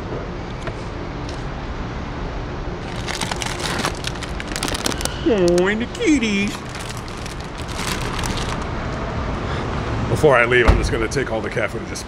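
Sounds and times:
plastic bag crinkling: 2.8 - 5.7, 6.3 - 8.7
low rumble: 2.8 - 10.1.

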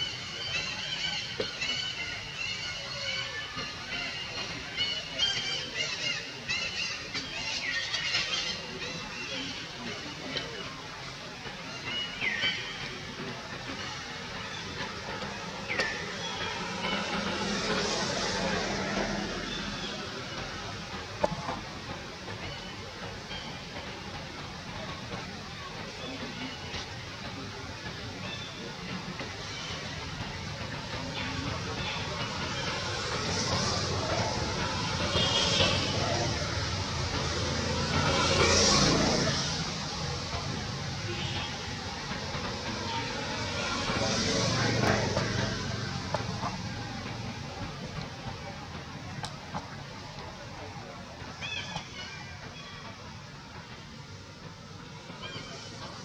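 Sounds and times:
distant vehicles passing: 0.0 - 56.0
faint voices: 0.0 - 56.0.

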